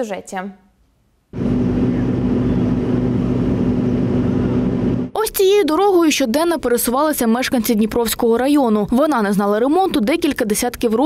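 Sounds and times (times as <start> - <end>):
heavy diesel engine running: 1.4 - 5.1.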